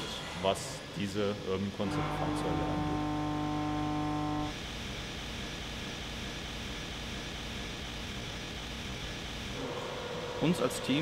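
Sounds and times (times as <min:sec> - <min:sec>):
steady mid-pitched hum: 0:00.0 - 0:11.0
workshop machinery running: 0:00.0 - 0:11.0.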